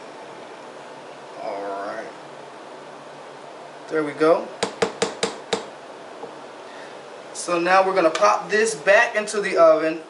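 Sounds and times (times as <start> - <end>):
spatula knocking on metal pan: 4.6 - 5.7.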